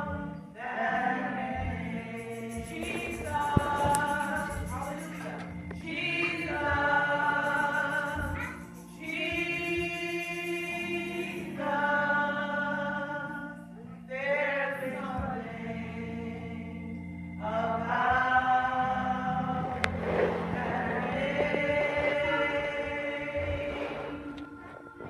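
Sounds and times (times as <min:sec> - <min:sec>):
choir and congregation singing: 0:00.0 - 0:25.0.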